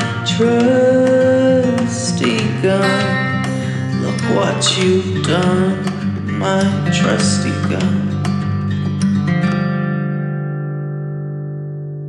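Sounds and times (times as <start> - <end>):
strummed guitar chord ringing: 0.0 - 12.0.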